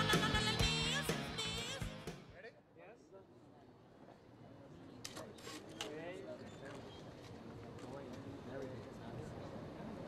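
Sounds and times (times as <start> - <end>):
faint indistinct voices: 2.4 - 10.0.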